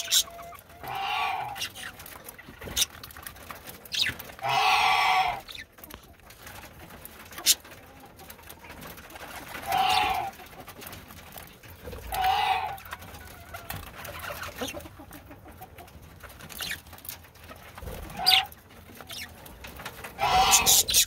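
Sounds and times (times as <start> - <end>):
budgerigars chirping: 0.0 - 1.9, 3.9 - 5.7, 18.1 - 18.5, 20.2 - 21.0
loud bird calls: 3.9 - 5.7, 9.6 - 10.3, 20.2 - 21.0.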